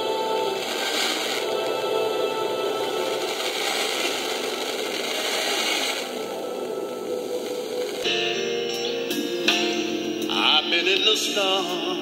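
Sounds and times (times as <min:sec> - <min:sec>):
faint classical music: 0:00.0 - 0:12.0
radio static hiss: 0:00.0 - 0:12.0.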